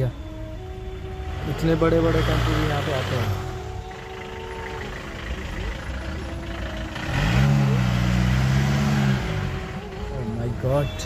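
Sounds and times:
car engine: 0:00.0 - 0:11.0
traffic noise: 0:00.0 - 0:11.0.

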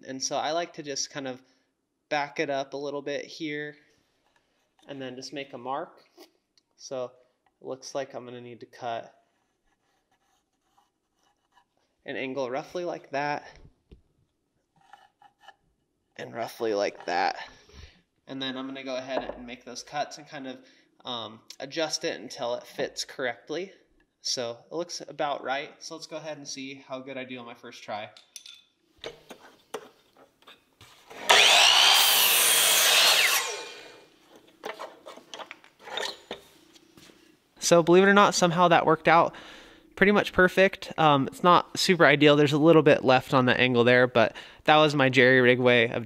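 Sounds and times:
electric miter saw cutting wood: 0:31.1 - 0:34.1.

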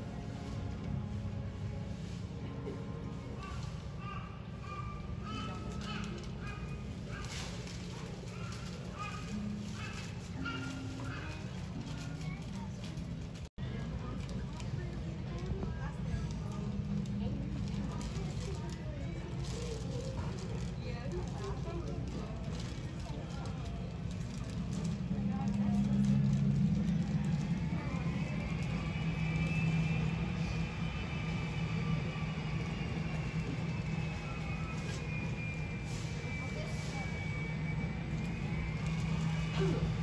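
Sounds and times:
high engine whine: 0:23.8 - 0:40.0.

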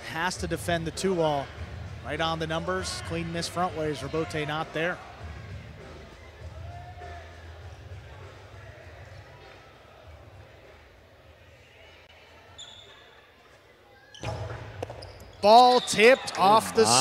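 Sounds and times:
brief high squeak: 0:12.5 - 0:13.1.

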